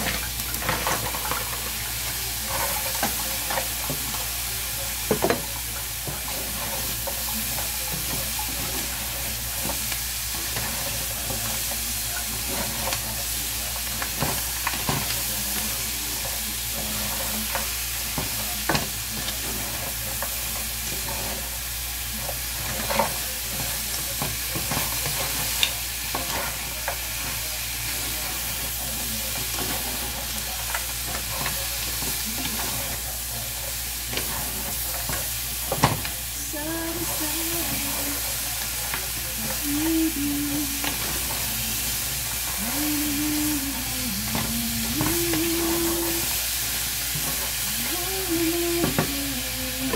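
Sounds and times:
crab sizzling in a frying pan: 0:00.0 - 0:49.9.

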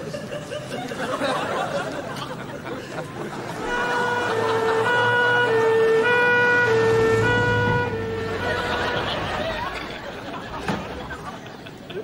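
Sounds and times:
street sound: 0:00.0 - 0:12.0
ambulance two-tone siren: 0:03.5 - 0:09.8.

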